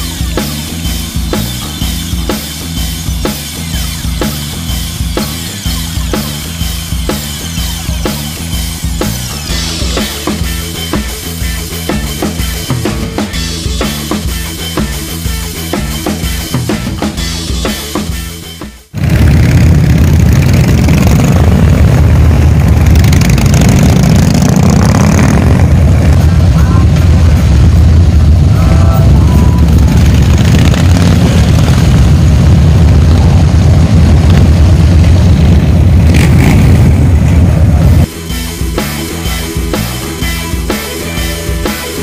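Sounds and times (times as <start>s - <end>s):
motorcycle engines rumbling: 0.0s - 42.0s.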